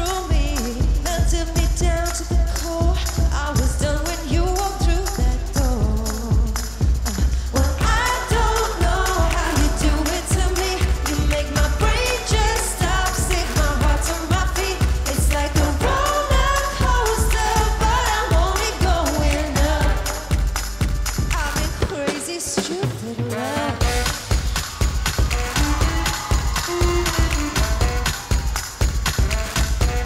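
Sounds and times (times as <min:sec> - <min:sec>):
pop dance music with vocals: 0:00.0 - 0:30.0.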